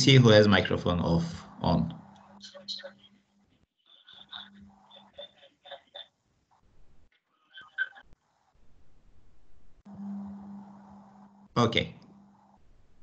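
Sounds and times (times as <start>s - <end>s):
electrical hum with hiss: 0.0s - 3.3s, 6.7s - 13.0s.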